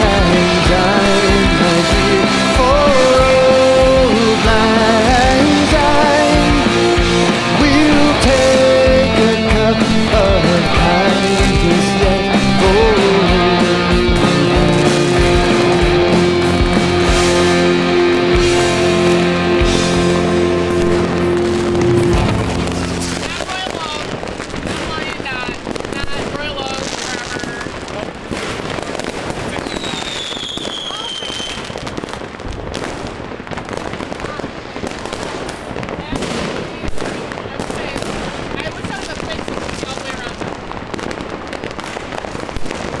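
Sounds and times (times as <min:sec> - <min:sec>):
fireworks crackling and banging: 0:00.0 - 0:43.0
loud firework bang: 0:12.5 - 0:43.0
falling firework whistle: 0:29.5 - 0:32.2.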